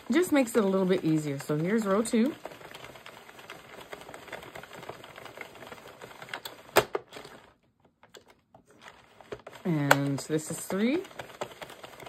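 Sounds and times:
knitting machine needles clicking: 0.0s - 7.5s, 8.1s - 12.0s.

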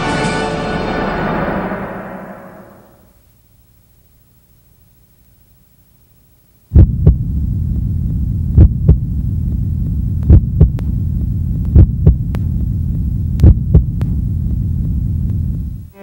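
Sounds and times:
low droning hum: 0.0s - 16.0s
heartbeat-like double thump: 6.7s - 15.9s.

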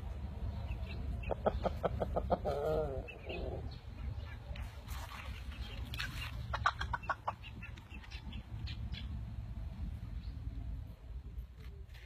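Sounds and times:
steady low rumble: 0.0s - 12.0s
chicken clucking: 0.6s - 9.1s.

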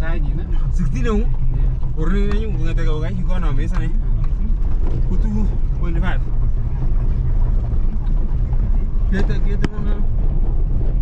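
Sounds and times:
car driving on gravel road: 0.0s - 11.0s.

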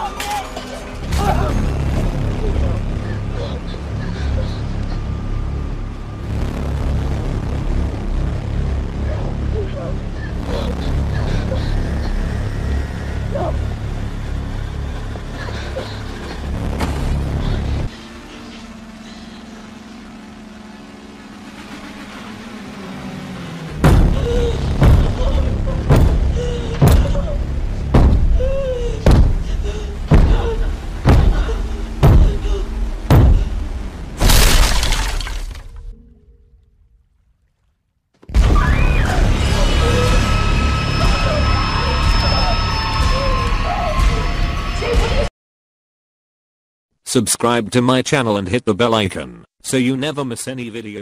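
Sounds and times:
low drone: 0.0s - 37.1s, 38.3s - 45.3s
low rumble: 0.8s - 37.5s
loud shattering crash: 34.2s - 35.8s.

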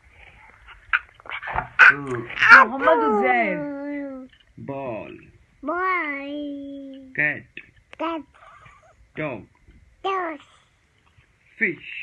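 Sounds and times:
toddler babbling: 5.6s - 7.1s, 8.0s - 8.4s, 10.1s - 10.5s.

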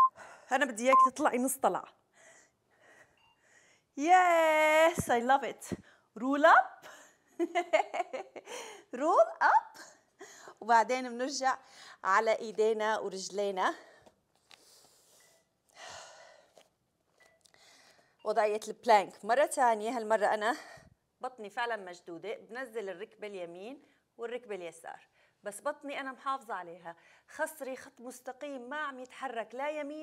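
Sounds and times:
woman breathing: 0.1s - 0.5s, 2.1s - 4.0s, 8.4s - 9.0s, 9.9s - 10.6s, 11.6s - 12.0s, 13.8s - 16.7s, 17.5s - 18.2s
woman breathing softly: 2.1s - 3.9s, 17.5s - 18.2s.

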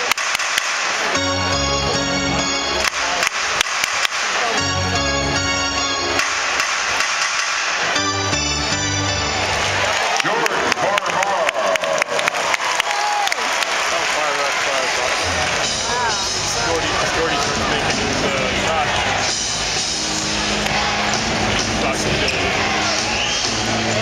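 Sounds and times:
crowd chatter and shouts: 0.0s - 6.9s, 7.8s - 24.0s
music over loudspeakers: 1.1s - 9.8s, 15.2s - 24.0s.

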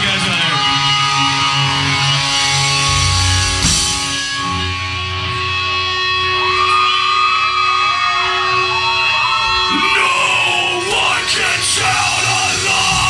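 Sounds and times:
distorted electric guitar bending notes: 0.0s - 13.0s
heavy metal band playing: 0.0s - 13.0s.

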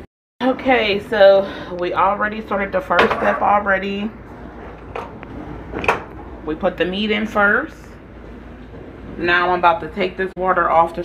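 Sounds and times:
kitchen background noise: 0.4s - 11.0s.

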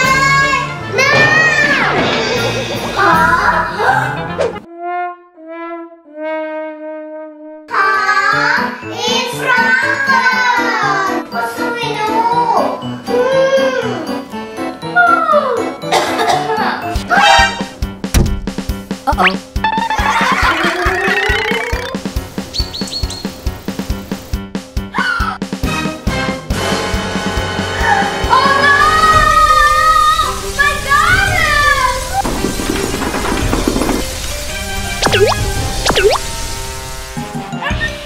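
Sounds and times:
music: 0.0s - 38.0s
rising glide sound effect: 19.7s - 22.0s, 35.0s - 36.3s
quick high chirps: 35.0s - 36.3s.

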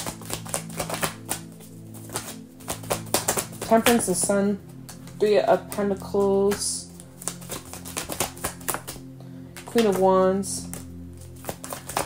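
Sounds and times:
cards being shuffled: 0.0s - 12.0s
soft background music: 0.0s - 12.0s.

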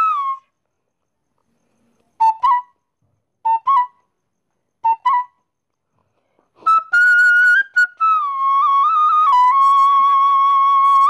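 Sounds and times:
flute playing: 0.0s - 0.5s, 2.2s - 2.8s, 3.4s - 4.1s, 4.8s - 5.5s, 6.6s - 11.0s.

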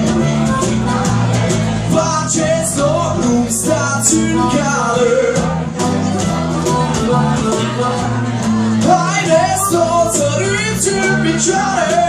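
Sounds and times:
bass guitar: 0.0s - 12.0s
cajon beat: 0.0s - 12.0s
strummed acoustic guitars: 0.0s - 12.0s.

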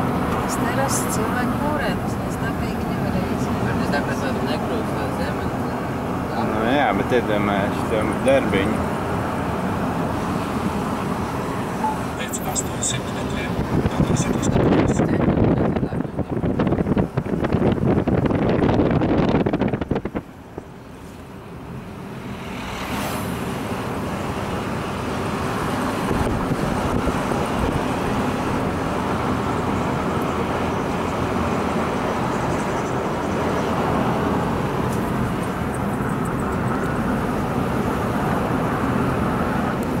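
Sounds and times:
car road and engine noise: 0.0s - 40.0s.

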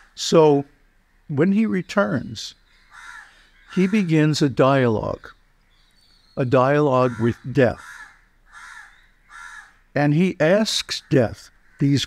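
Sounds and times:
bird harsh raspy call: 0.0s - 0.2s, 2.5s - 9.9s, 10.9s - 12.0s.

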